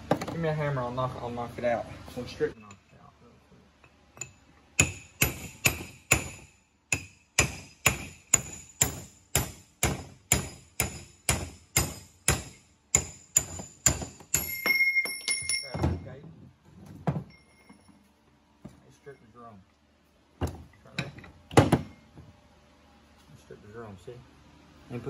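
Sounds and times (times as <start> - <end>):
hammer striking steel punch: 4.2 - 16.0
steady metallic ringing: 11.9 - 16.2.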